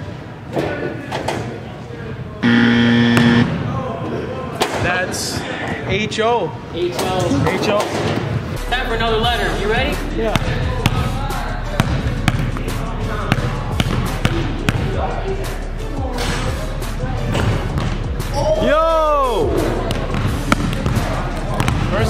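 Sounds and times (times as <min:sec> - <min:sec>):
basketball bouncing on gym floor: 0:10.3 - 0:11.1, 0:11.8 - 0:12.7, 0:13.3 - 0:14.9, 0:19.9 - 0:22.0.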